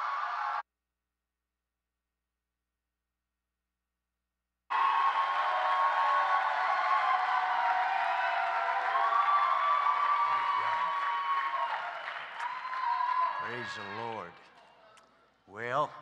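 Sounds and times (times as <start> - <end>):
crowd cheering and calling out: 0.0 - 0.6, 4.7 - 14.8
audience applauding: 4.7 - 14.8.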